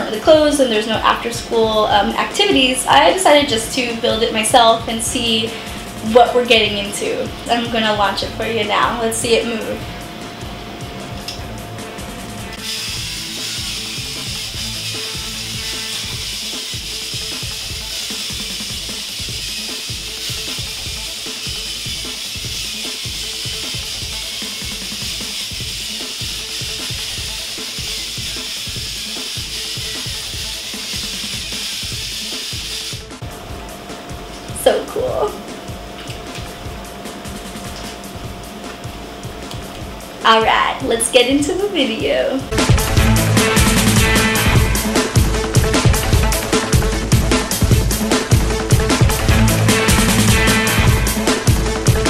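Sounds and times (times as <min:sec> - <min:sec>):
background music: 0:00.0 - 0:52.0
toy robot motor whirring: 0:12.6 - 0:33.2.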